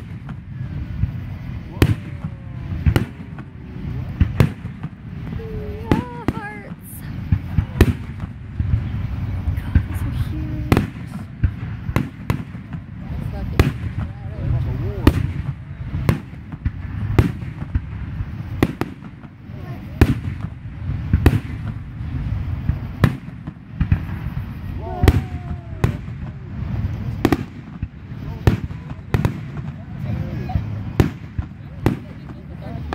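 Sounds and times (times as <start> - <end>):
fireworks bangs: 0.0 - 32.9
low rumble: 0.0 - 32.9.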